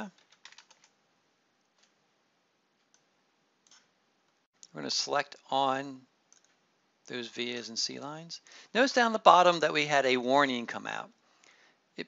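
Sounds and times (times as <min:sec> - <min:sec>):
faint keyboard keystrokes: 0:00.1 - 0:00.9.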